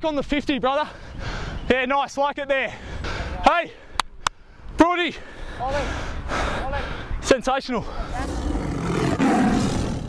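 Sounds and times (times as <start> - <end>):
tiger roar: 8.1 - 10.0.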